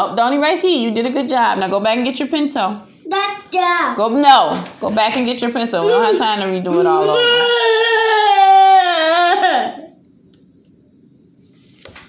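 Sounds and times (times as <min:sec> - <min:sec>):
young child whining: 0:07.0 - 0:10.0.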